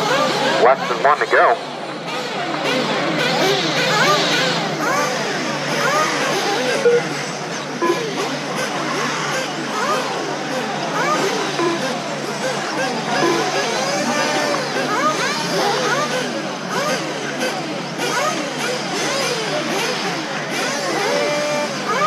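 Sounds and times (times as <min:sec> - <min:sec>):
electric motors whining: 0:00.0 - 0:22.0.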